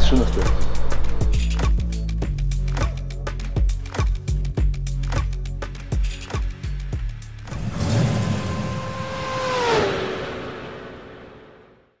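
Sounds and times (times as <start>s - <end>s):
car driving past: 7.5s - 12.0s.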